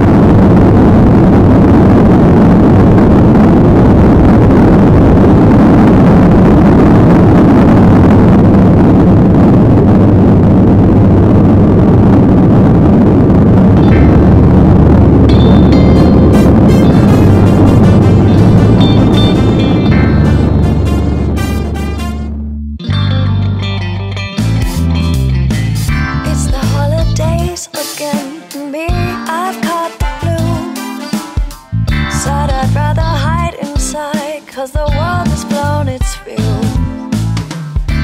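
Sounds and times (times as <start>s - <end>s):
jet engines at takeoff thrust: 0.0s - 20.6s
music: 13.8s - 38.0s.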